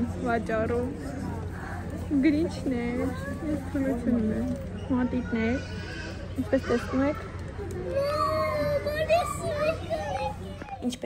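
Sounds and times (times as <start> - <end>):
child talking: 6.5 - 11.0.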